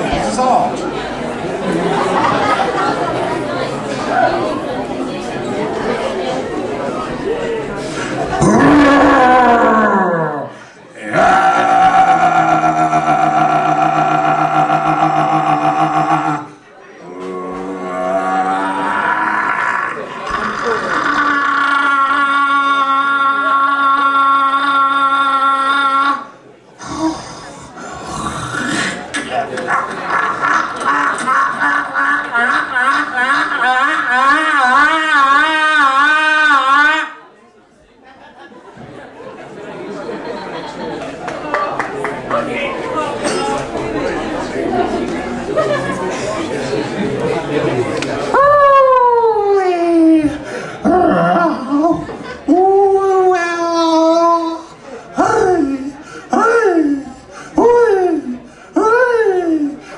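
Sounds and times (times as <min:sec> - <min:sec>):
babble of voices: 0:00.0 - 0:59.9.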